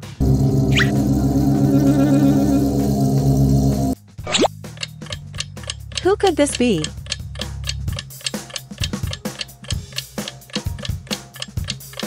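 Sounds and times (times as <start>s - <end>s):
low drone: 0.0s - 4.0s.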